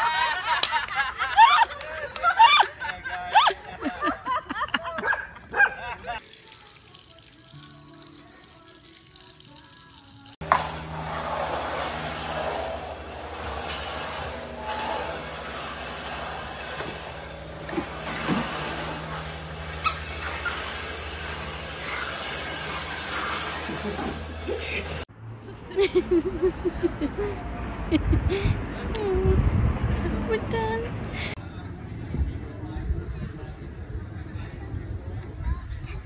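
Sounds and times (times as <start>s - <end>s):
laughter: 0.0s - 6.2s, 23.6s - 28.6s.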